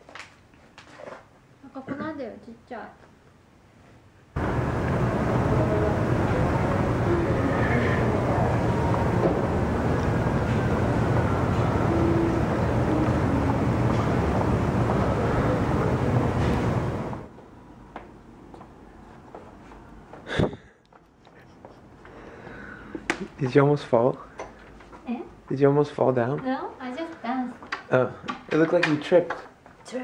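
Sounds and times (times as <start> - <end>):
outdoor rumble and hiss: 0.0 - 30.0.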